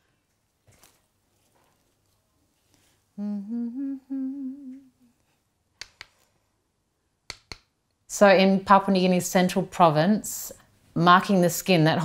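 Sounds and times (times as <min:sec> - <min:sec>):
woman humming: 0:03.2 - 0:05.1.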